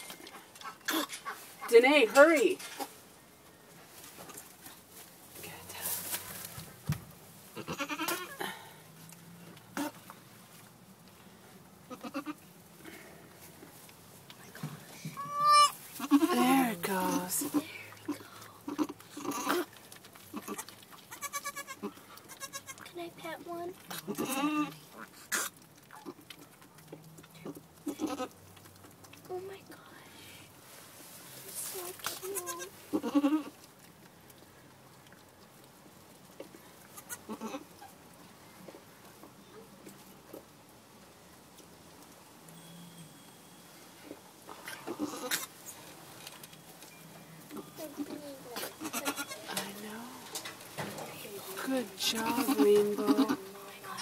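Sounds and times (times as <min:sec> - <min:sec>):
straw rustling: 0:00.0 - 0:11.8, 0:12.4 - 0:29.2, 0:29.8 - 0:42.4, 0:43.1 - 0:54.0
rustling in straw: 0:01.2 - 0:08.4, 0:13.2 - 0:17.8, 0:30.3 - 0:33.6
goat bleating: 0:07.6 - 0:08.5, 0:11.9 - 0:12.4, 0:15.2 - 0:16.5, 0:18.7 - 0:19.7, 0:20.3 - 0:22.8, 0:24.0 - 0:26.2, 0:27.9 - 0:28.4, 0:32.2 - 0:33.6, 0:37.0 - 0:37.8, 0:44.8 - 0:45.5, 0:48.6 - 0:49.6, 0:52.1 - 0:53.5.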